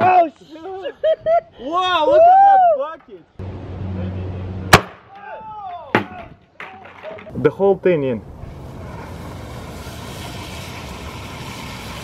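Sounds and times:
liquid nitrogen hissing: 8.4s - 12.0s.

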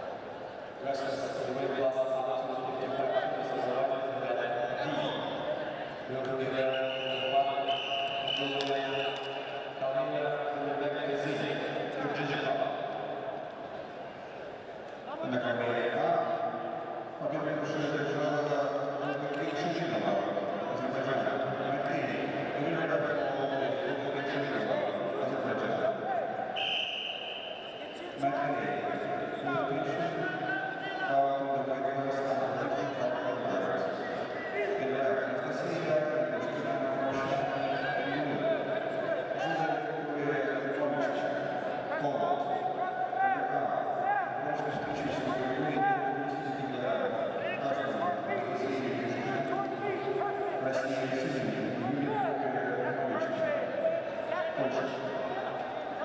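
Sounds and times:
referee's whistle blast: 6.6s - 9.7s, 26.5s - 28.1s.

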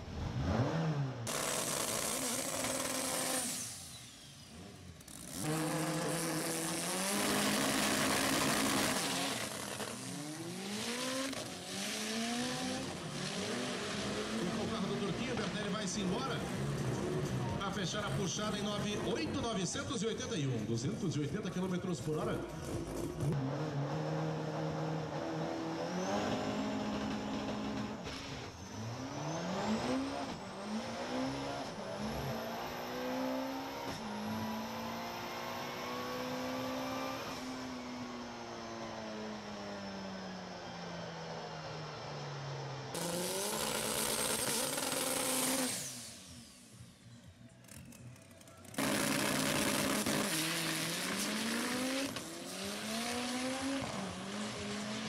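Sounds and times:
car engine revving through upshifts: 0.0s - 17.6s, 23.2s - 47.1s, 48.7s - 55.0s.

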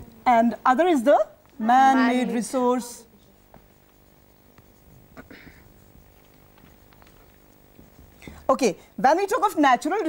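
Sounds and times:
low room hum: 0.0s - 10.0s
writing on a board: 1.5s - 10.0s
pen or chalk ticks: 5.8s - 8.3s.

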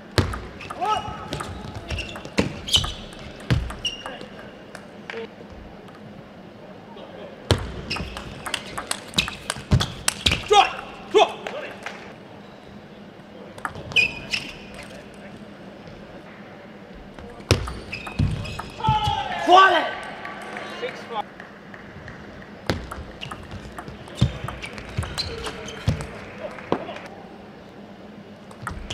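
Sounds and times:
table tennis ball clicking: 0.2s - 4.9s, 7.9s - 10.9s, 22.4s - 26.2s, 28.5s - 28.9s
player shouting: 0.8s - 1.3s, 10.5s - 11.4s, 18.8s - 20.9s.

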